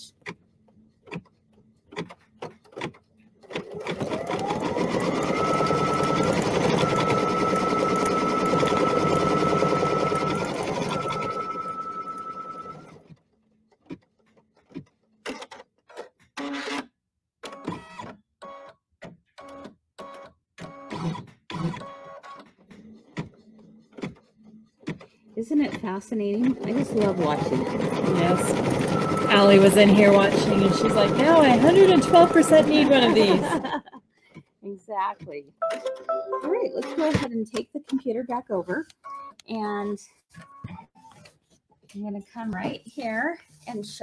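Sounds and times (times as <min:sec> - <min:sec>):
embroidery machine stitching: 0:01.9 - 0:13.1, 0:25.5 - 0:33.7.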